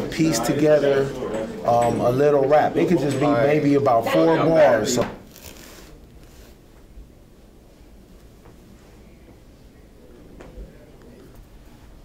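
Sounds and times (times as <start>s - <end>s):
man's voice: 0.0s - 5.2s.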